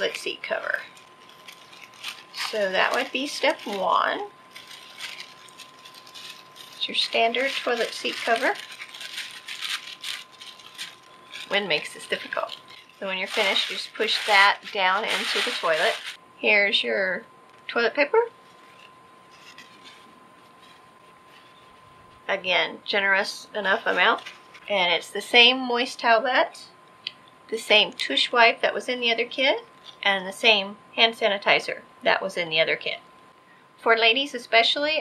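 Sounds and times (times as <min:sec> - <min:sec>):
paper rustling: 0:00.0 - 0:16.2, 0:18.5 - 0:22.0, 0:23.6 - 0:24.8.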